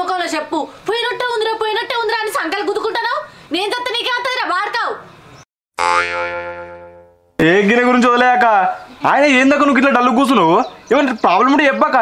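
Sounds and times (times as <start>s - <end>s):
twangy comedy ringing tone: 5.8s - 7.5s.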